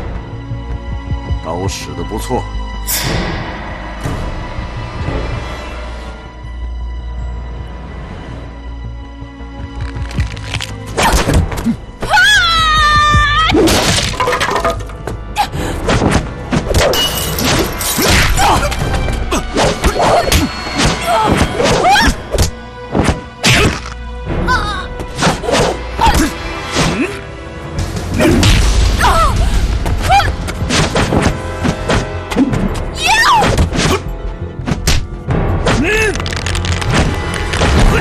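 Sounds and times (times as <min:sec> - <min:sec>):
dramatic background music: 0:00.0 - 0:38.0
wood cracking and breaking: 0:13.6 - 0:15.0, 0:36.0 - 0:38.0.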